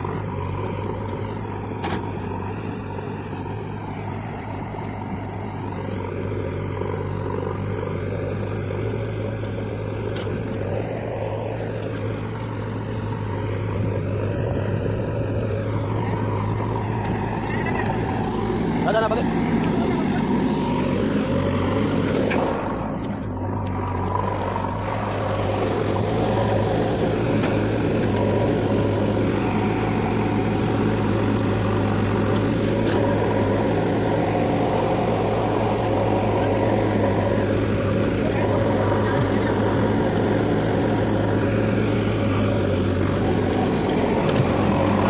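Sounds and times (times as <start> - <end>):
diesel engine humming: 0.0 - 45.0.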